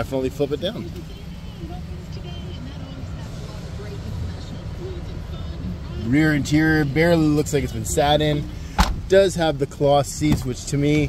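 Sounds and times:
faint indistinct voices: 0:00.0 - 0:08.8
steady low rumble: 0:00.0 - 0:11.0.

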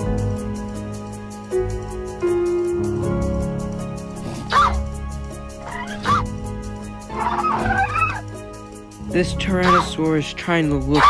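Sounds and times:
background music with held tones: 0:00.0 - 0:11.0
dinosaur cries: 0:07.1 - 0:08.2.

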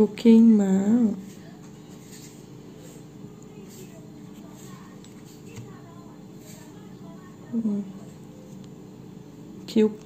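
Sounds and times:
low background hum: 0:00.0 - 0:10.0
faint handling sounds: 0:01.2 - 0:07.2, 0:07.9 - 0:08.8.

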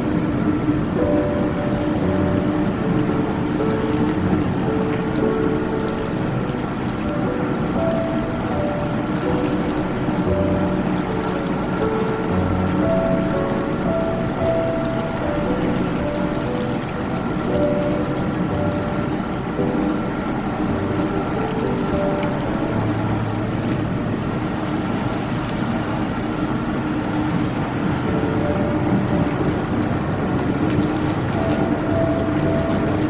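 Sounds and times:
bathtub jets churning water: 0:00.0 - 0:33.0
soft background music: 0:00.0 - 0:33.0.

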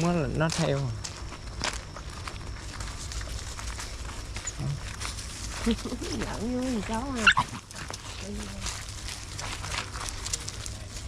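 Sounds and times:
puppies playing and scuffling: 0:00.0 - 0:11.0
puppy yelping: 0:07.2 - 0:07.9.

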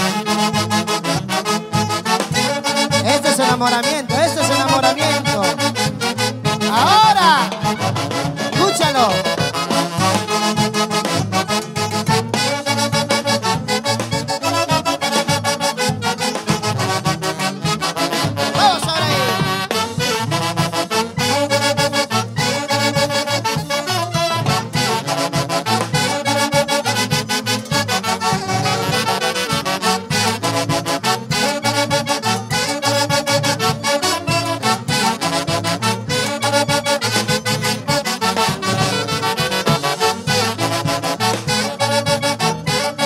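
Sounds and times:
saxophones playing melody: 0:00.0 - 0:43.0.

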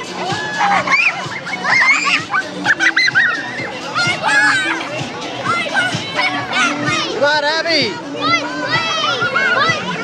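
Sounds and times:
children shrieking and shouting: 0:00.0 - 0:10.0.

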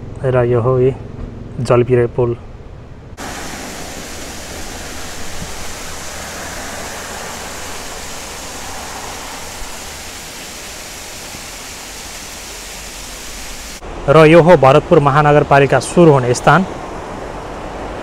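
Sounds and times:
waterfall rushing hiss: 0:03.2 - 0:13.8.

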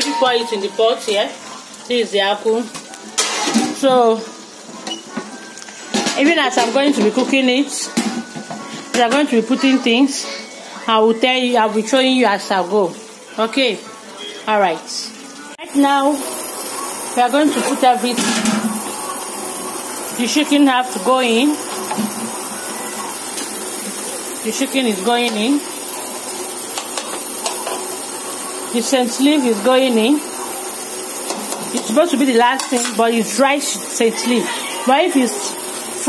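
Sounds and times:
pot sizzling on stove: 0:00.0 - 0:36.0
gas burner hissing: 0:15.6 - 0:36.0.

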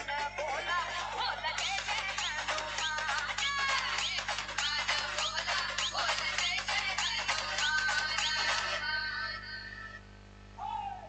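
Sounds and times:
electronic music with steady beat: 0:00.0 - 0:08.8.

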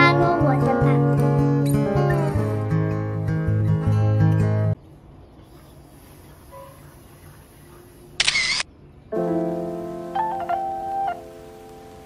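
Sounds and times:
camera shutter sound effect: 0:08.2 - 0:08.7
held keyboard chord: 0:09.1 - 0:12.0.

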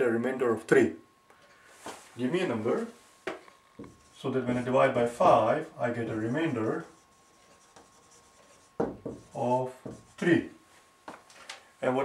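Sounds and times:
marker writing on whiteboard: 0:06.3 - 0:10.3.

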